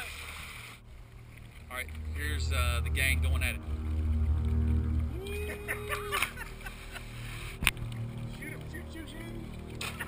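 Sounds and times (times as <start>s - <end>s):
low rumble of water and wind: 0.0s - 10.0s.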